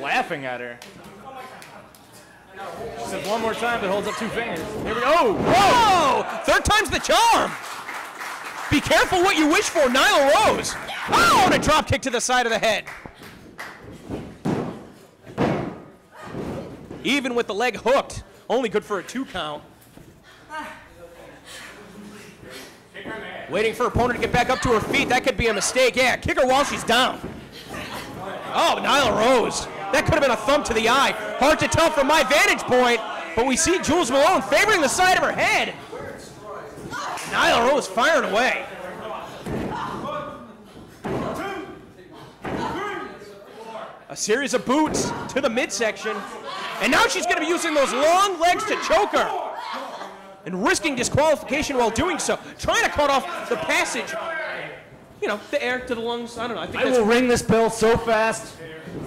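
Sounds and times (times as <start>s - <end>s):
shouting: 4.9s - 7.5s, 9.4s - 11.7s.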